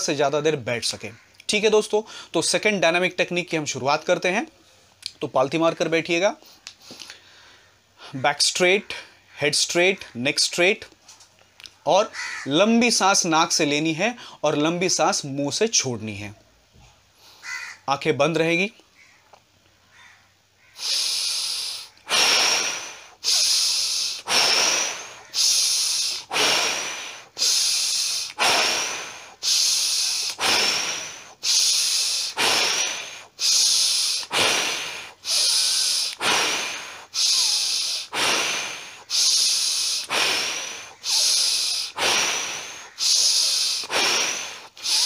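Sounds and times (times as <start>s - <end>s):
man breathing forcefully: 20.8s - 45.0s.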